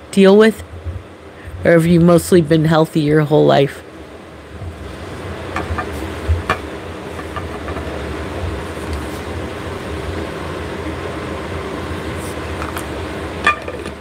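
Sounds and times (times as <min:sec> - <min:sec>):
low rumble with hiss: 0:00.0 - 0:14.0.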